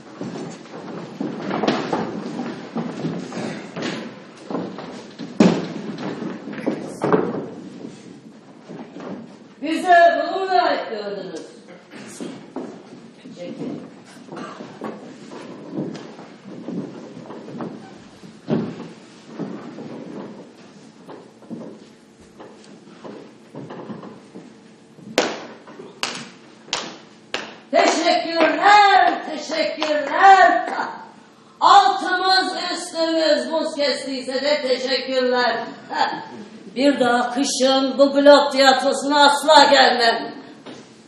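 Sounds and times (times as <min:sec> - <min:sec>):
sharp knocks and thumps: 0:00.0 - 0:09.6, 0:12.0 - 0:29.2
noisy background: 0:00.0 - 0:41.0
knocks on a stage echoing: 0:03.8 - 0:08.0.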